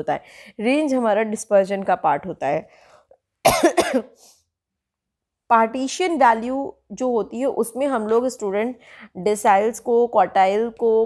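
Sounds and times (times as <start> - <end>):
woman coughing: 3.4 - 4.2.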